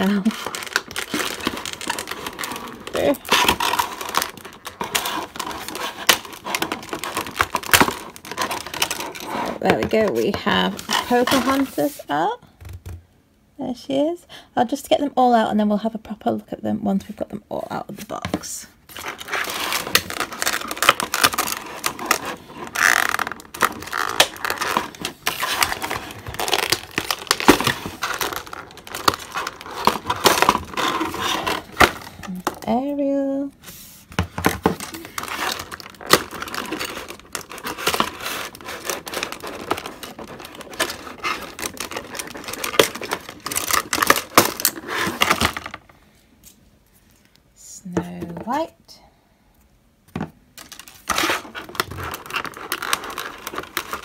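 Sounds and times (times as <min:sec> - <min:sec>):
plastic packaging crinkling: 0:00.0 - 0:12.1, 0:18.8 - 0:32.7, 0:34.2 - 0:47.4, 0:50.6 - 0:54.0.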